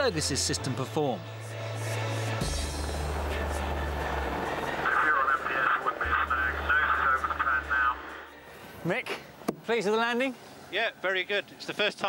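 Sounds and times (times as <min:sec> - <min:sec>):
helicopter rotor and engines: 0:01.5 - 0:11.9.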